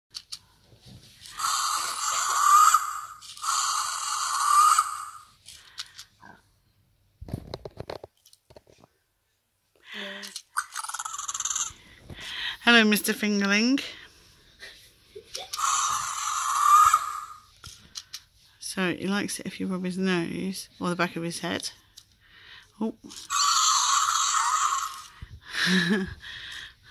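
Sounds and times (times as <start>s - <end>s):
toy dinosaur raspy roars: 1.3s - 5.3s, 15.5s - 17.5s, 23.2s - 25.2s.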